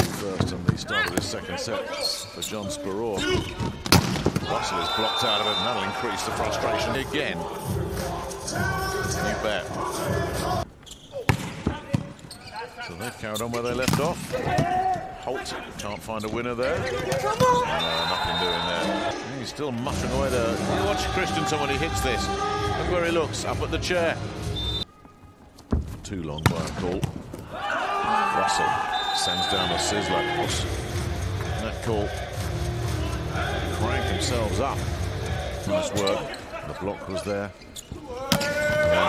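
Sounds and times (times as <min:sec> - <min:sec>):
volleyball struck with slaps: 0:03.8 - 0:04.5
crowd cheering and shouting: 0:04.4 - 0:10.6, 0:20.6 - 0:23.2, 0:27.4 - 0:36.2, 0:38.0 - 0:39.0.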